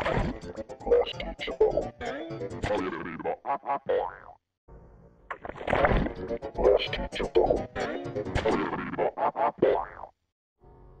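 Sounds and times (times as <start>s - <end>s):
warped voice-like cartoon noises: 0.0s - 4.2s, 6.6s - 10.0s.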